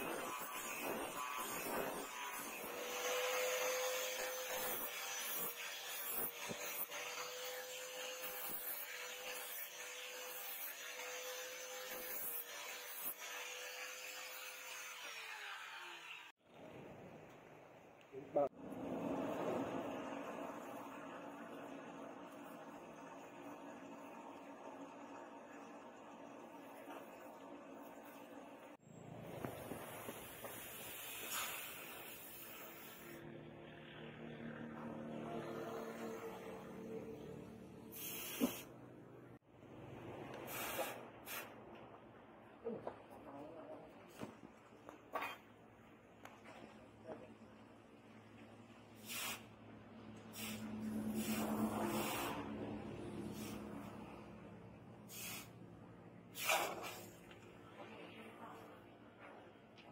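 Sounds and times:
angle grinder grinding steel: 0:00.0 - 0:16.3
hot blade hissing in water: 0:29.8 - 0:33.2, 0:37.9 - 0:38.7, 0:40.5 - 0:41.5, 0:49.0 - 0:49.5, 0:50.3 - 0:52.5, 0:53.3 - 0:53.7, 0:55.1 - 0:55.6.

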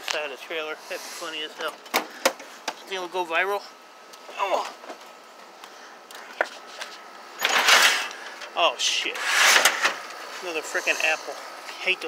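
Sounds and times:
computer cases being shifted: 0:06.6 - 0:08.1.

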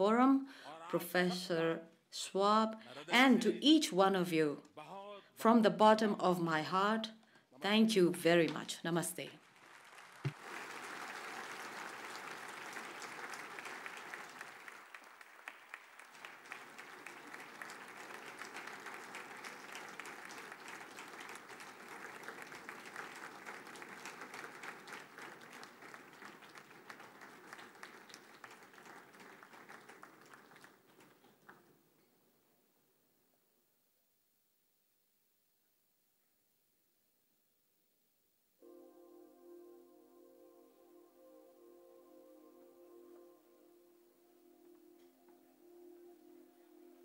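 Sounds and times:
audience applauding: 0:09.4 - 0:31.7.

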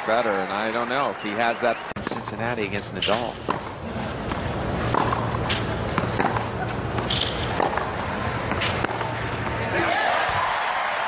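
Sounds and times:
tennis ball struck and bounced: 0:02.0 - 0:09.8
shoes scuffing on clay court: 0:03.1 - 0:09.8.

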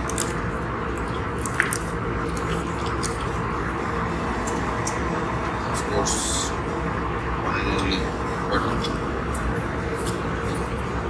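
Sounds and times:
airliner cabin drone: 0:00.0 - 0:11.0.

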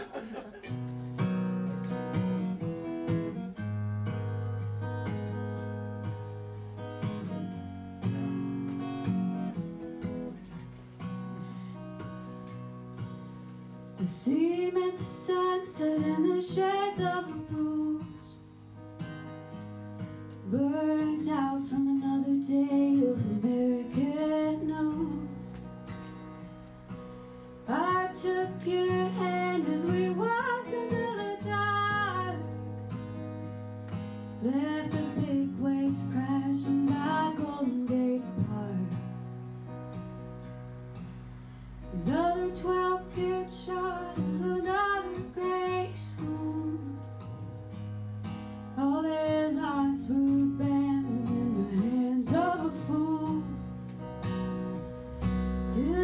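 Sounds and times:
acoustic guitar strumming: 0:00.0 - 0:56.0
woman singing: 0:14.0 - 0:18.4, 0:20.4 - 0:25.6, 0:27.7 - 0:32.6, 0:34.4 - 0:39.1, 0:41.9 - 0:47.1, 0:48.8 - 0:53.7, 0:55.7 - 0:56.0.

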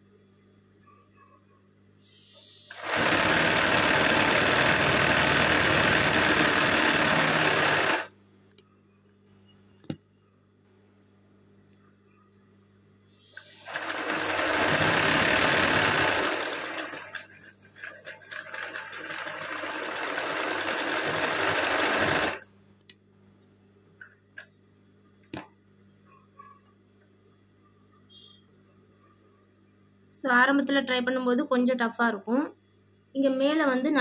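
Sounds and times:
sewing machine stitching: 0:02.7 - 0:08.1, 0:13.4 - 0:22.4.

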